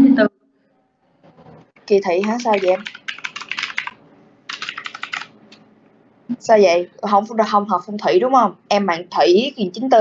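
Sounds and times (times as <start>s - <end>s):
typing on computer keyboard: 2.0s - 5.6s.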